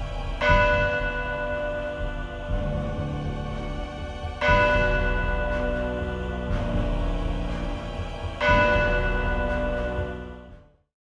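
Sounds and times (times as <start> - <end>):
low musical bed: 0.0 - 10.9.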